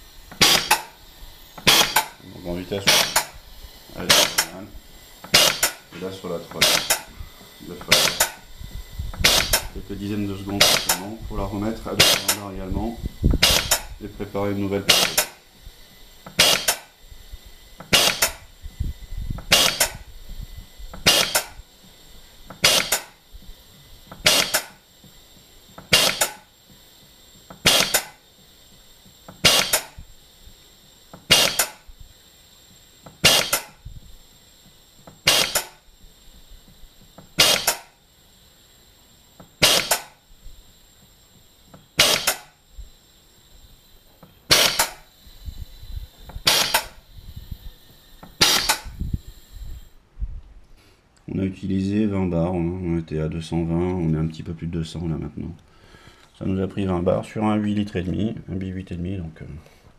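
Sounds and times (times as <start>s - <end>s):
gas booster pump air bursts: 0.0s - 50.0s.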